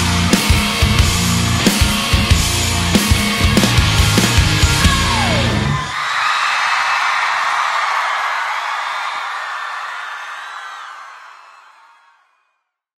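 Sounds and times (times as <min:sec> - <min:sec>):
crowd cheering and screaming: 0:03.8 - 0:12.5.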